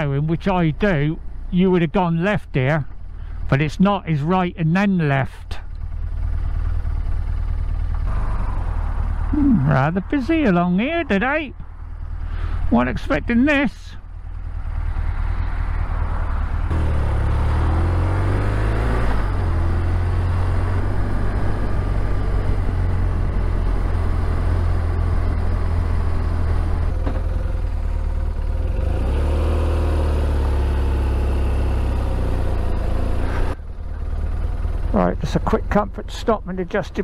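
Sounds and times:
motorcycle engine: 0.0 - 37.0
wind and road noise: 0.0 - 37.0.

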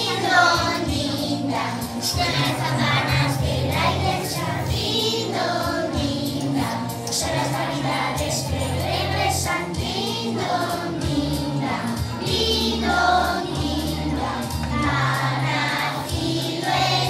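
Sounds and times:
children singing: 0.0 - 17.0
music with bass line: 0.0 - 17.0.

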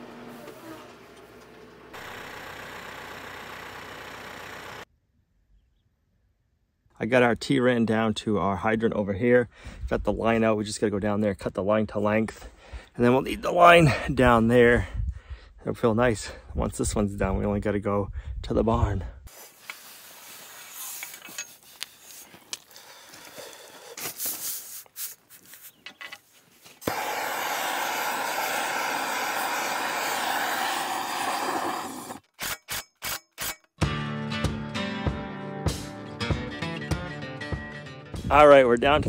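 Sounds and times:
tool scraping in gravel: 19.3 - 27.0
loud steady hiss: 26.8 - 32.2
background music: 33.8 - 38.4.

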